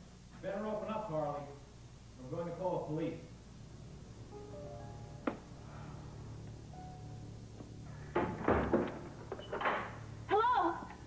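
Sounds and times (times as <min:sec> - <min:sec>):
door rattling and banging: 0:08.1 - 0:10.0.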